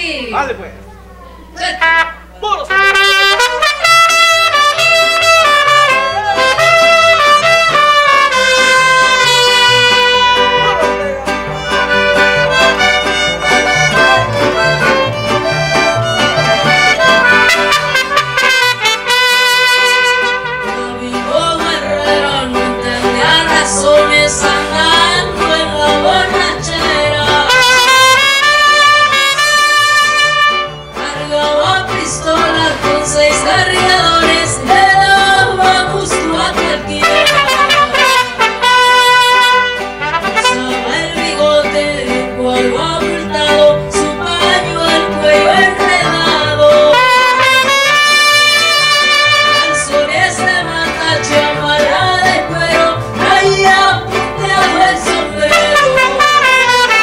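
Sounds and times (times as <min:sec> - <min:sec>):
mariachi band playing: 0:00.0 - 0:57.0.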